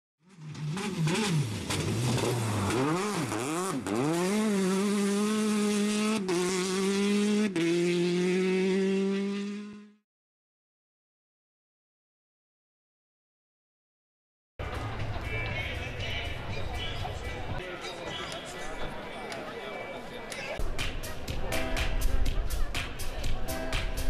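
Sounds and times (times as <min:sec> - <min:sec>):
race car engine revving: 0:00.3 - 0:10.0.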